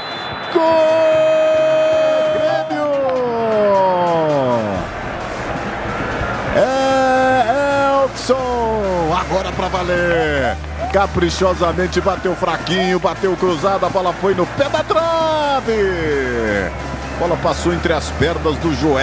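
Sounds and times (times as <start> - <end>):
commentator's drawn-out goal cry: 0.5 - 4.8.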